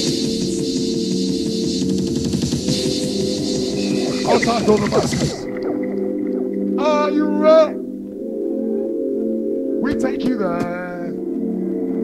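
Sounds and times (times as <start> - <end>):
hardcore rave dj mix: 0.0 - 5.6
sustained synth chords: 0.0 - 9.9.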